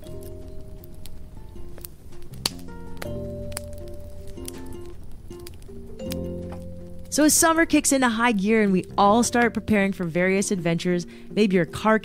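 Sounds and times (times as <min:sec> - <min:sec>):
slow held instrumental notes: 0:00.0 - 0:11.7.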